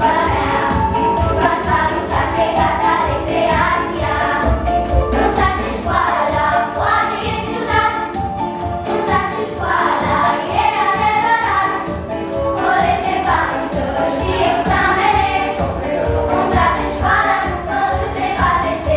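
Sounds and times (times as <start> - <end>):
girls singing together: 0.0 - 8.2, 8.8 - 15.7, 16.4 - 18.9
music with steady beat: 0.0 - 18.9.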